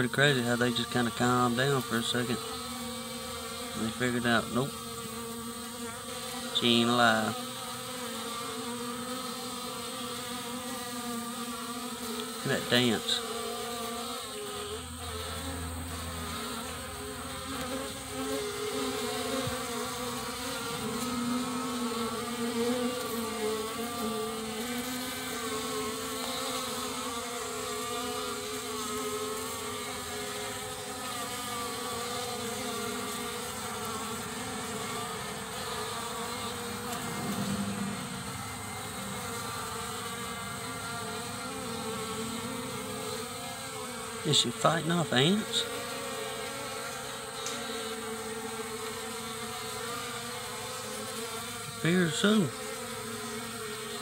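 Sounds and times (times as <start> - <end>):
bees buzzing: 0.0 - 54.0.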